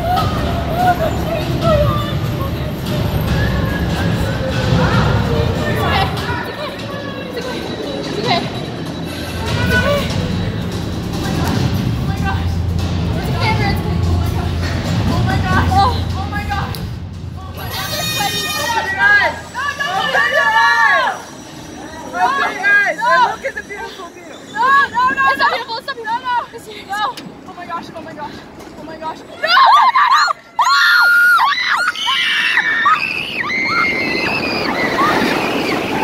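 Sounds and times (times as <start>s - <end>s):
wordless wavering voices: 0.0s - 11.5s, 17.4s - 27.1s
riders screaming: 29.4s - 36.0s.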